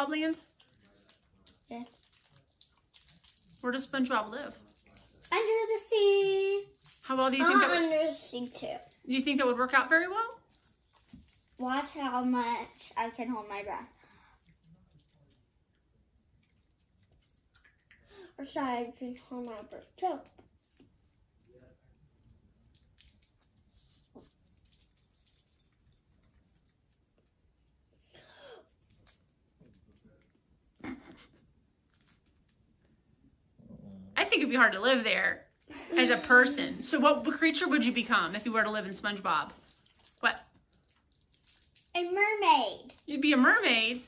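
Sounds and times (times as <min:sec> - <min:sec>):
candy wrappers rustling: 0:00.3 - 0:15.4, 0:31.9 - 0:32.7, 0:35.5 - 0:44.0.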